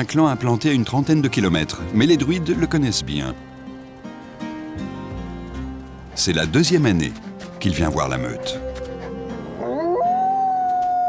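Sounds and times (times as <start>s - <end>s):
wolf howling: 7.3s - 11.0s.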